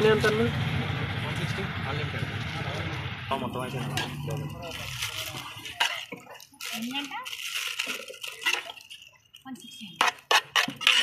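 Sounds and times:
metal ladle scraping a pot: 3.8s - 11.0s
foil bag crinkling: 4.4s - 9.7s.

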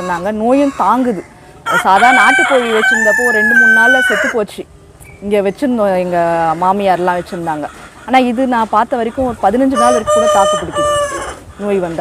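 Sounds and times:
woman talking: 0.0s - 10.9s, 11.6s - 12.0s
rooster crowing: 0.6s - 4.4s, 9.8s - 11.4s.

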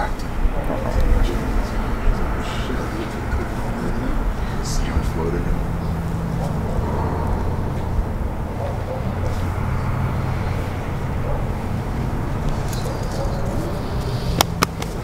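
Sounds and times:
low engine hum: 0.0s - 15.0s.

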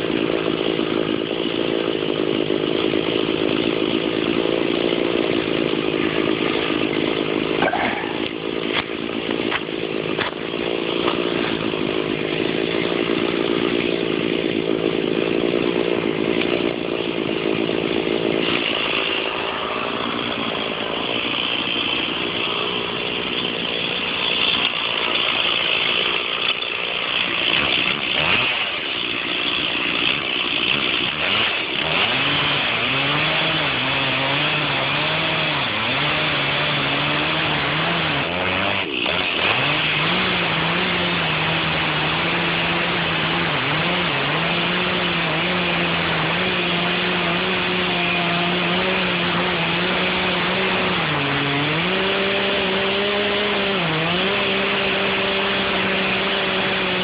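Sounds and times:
chainsaw cutting wood: 0.0s - 57.0s.

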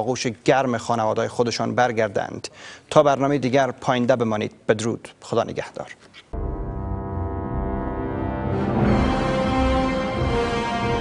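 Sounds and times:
theme music with pulsing bass: 6.4s - 11.0s.

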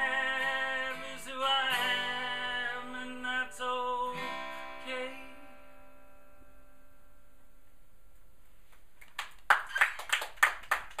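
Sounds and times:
acoustic guitar chord ringing: 0.0s - 8.1s
hands clapping: 8.7s - 11.0s.

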